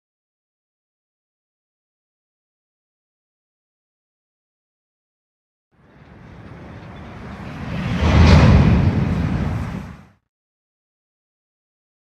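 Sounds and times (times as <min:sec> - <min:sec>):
rumbling rushing noise: 0:05.8 - 0:10.2.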